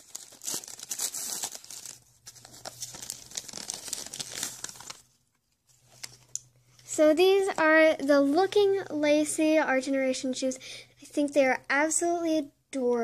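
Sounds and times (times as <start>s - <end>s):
wrapping paper tearing and crumpling: 0.0s - 5.2s.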